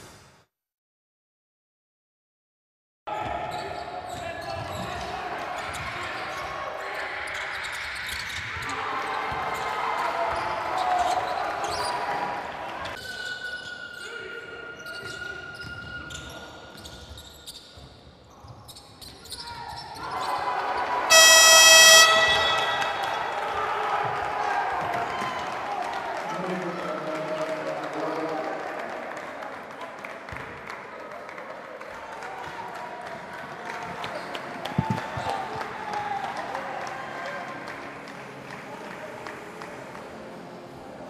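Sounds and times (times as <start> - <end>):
crowd noise: 3.1 - 13.3, 19.7 - 41.0
loud horn: 21.1 - 23.4.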